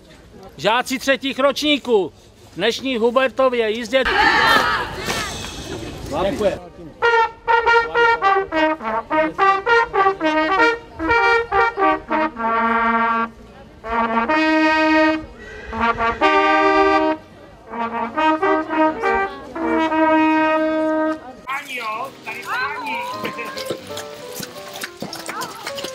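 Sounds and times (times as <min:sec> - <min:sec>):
brass horns playing fanfare: 0:07.0 - 0:24.3.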